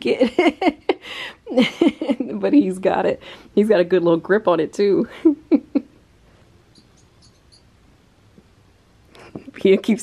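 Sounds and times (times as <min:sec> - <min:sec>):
woman laughing: 0:00.0 - 0:02.6, 0:05.0 - 0:06.0.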